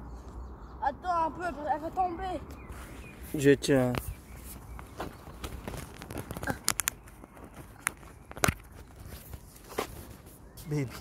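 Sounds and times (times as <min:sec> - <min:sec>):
footsteps on pavement: 0:01.8 - 0:11.0.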